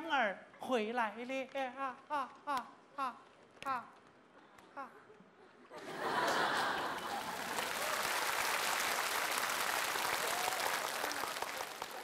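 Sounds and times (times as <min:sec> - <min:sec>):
audience laughter: 0:05.7 - 0:07.7
studio audience applauding: 0:06.0 - 0:12.0.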